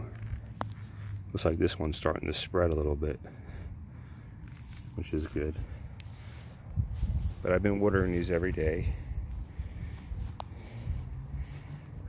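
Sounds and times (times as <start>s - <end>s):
insects chirping: 0.0s - 12.0s
low microphone rumble: 5.5s - 12.0s.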